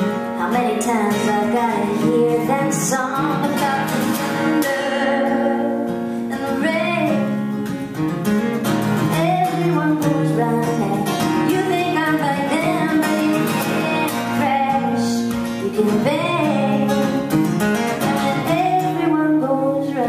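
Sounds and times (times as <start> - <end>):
woman singing: 0.0 - 7.8, 8.9 - 20.0
acoustic guitar strumming: 0.0 - 20.0.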